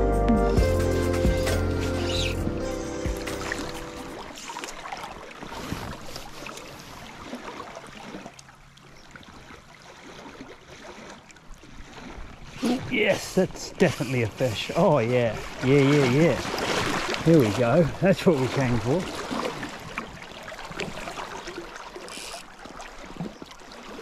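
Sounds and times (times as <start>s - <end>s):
background music: 0.0s - 4.2s
river running over stones: 12.4s - 24.0s.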